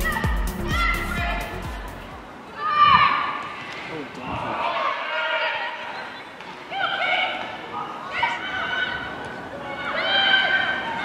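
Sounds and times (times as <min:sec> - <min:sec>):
women shouting and calling: 0:00.0 - 0:03.5, 0:06.7 - 0:11.0.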